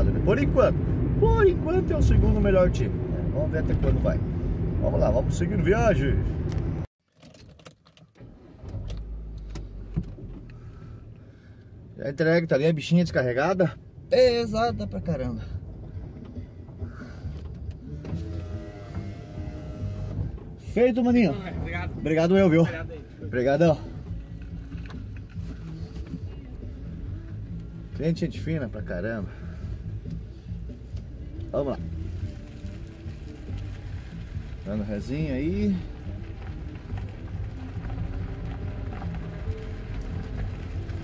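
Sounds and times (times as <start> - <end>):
man talking: 0.0 - 4.2, 4.8 - 6.3, 12.0 - 15.6, 20.6 - 23.9, 34.6 - 35.9
vehicle engine and road noise: 0.0 - 41.0.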